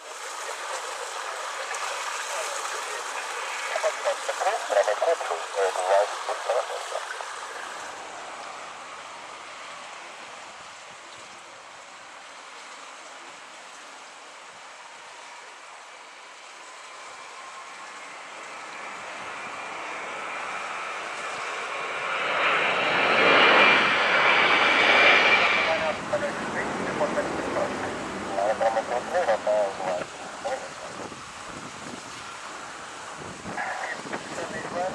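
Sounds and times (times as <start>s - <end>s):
jet engines roaring: 0.0s - 10.8s, 16.3s - 34.9s
high jet engine whine: 0.0s - 34.9s.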